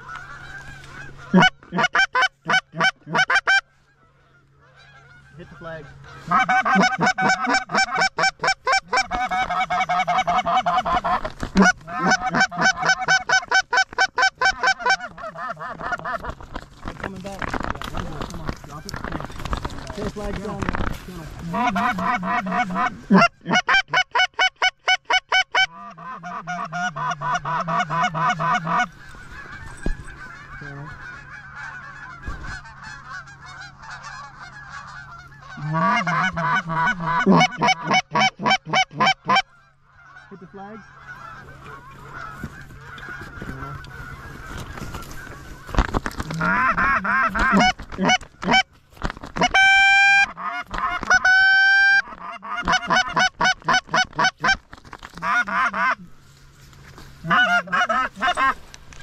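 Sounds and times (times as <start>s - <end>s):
goose honking: 0.0s - 48.7s, 49.3s - 59.0s
rustling: 8.6s - 23.2s, 26.8s - 37.2s, 40.8s - 49.9s, 53.0s - 59.0s.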